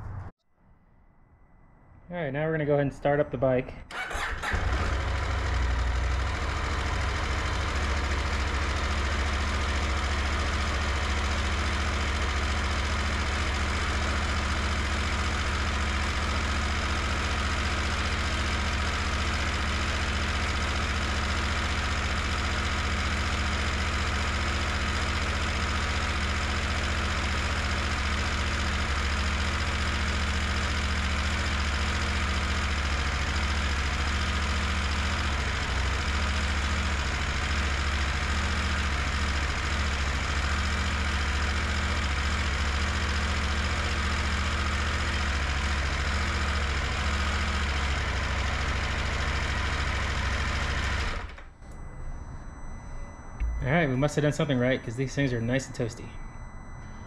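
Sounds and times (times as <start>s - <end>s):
motorcycle engine starting and idling: 3.9s - 51.9s.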